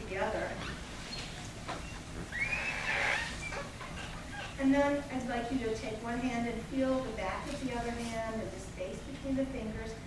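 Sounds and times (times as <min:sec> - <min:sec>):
palms rubbing together: 0:00.5 - 0:04.6.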